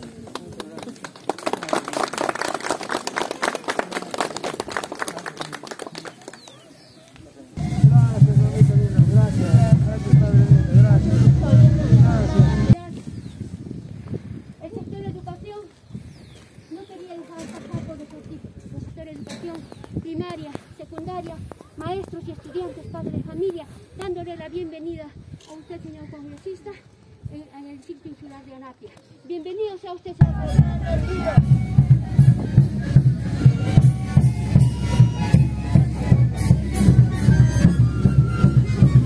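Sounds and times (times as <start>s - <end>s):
people clapping: 0.0s - 7.2s.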